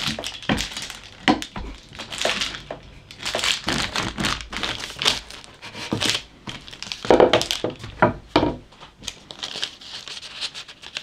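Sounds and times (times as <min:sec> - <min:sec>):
parchment paper crinkling: 0:00.0 - 0:08.1, 0:08.9 - 0:11.0.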